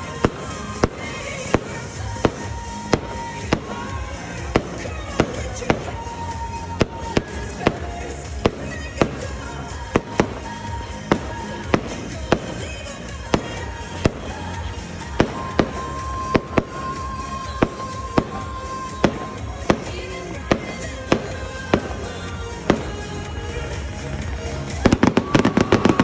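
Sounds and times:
fireworks bangs: 0.0s - 26.0s
music: 0.0s - 26.0s.

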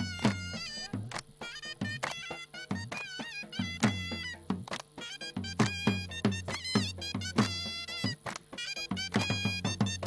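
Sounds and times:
drum beating quick rhythm: 0.0s - 10.0s
reed wind instrument melody: 0.0s - 10.0s.

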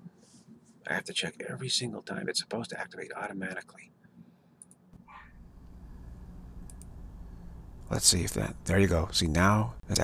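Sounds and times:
low steady hum: 0.0s - 10.0s
computer mouse clicks: 4.6s - 4.8s, 6.6s - 7.0s.

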